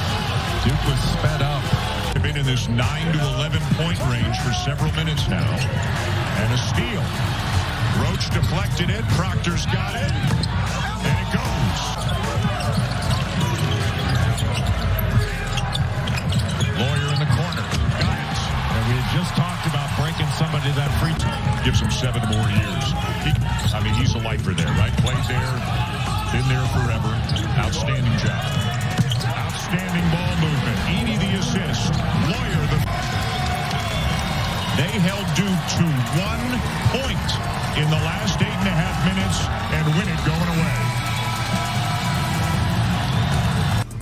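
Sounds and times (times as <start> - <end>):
background music: 0.0 - 16.1, 17.7 - 44.0
arena crowd noise: 0.0 - 44.0
voices: 16.4 - 34.1, 34.7 - 41.8.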